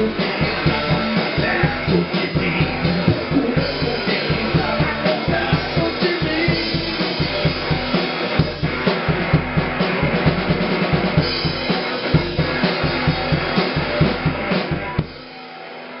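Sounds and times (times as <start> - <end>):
rock drums and electric guitar: 0.0 - 16.0.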